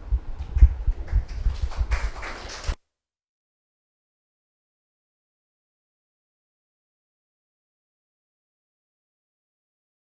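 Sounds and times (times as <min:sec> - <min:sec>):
microphone handling bumps and rustles: 0:00.0 - 0:02.8.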